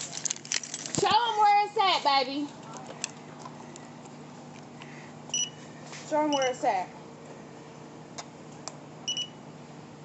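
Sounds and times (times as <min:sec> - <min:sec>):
faint background hum: 0:00.0 - 0:10.0.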